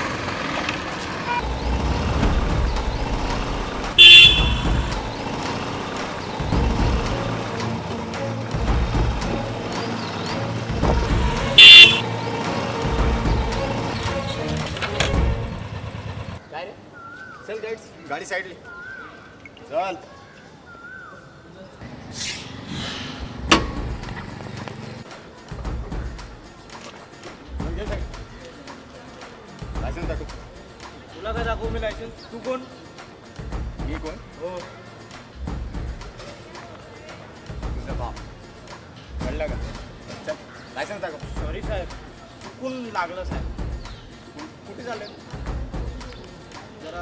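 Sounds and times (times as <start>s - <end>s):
motorbike engines running: 0.0s - 16.4s
background music: 1.4s - 16.4s, 21.8s - 47.0s
motorcycle engine idling: 4.0s - 5.2s.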